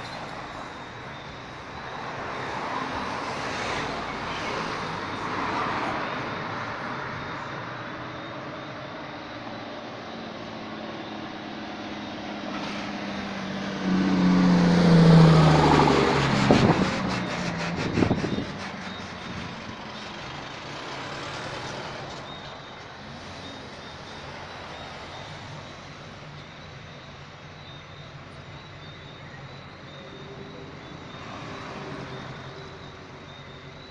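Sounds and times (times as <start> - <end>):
road traffic passing: 0.0 - 33.9
vehicle passing close: 12.6 - 22.2.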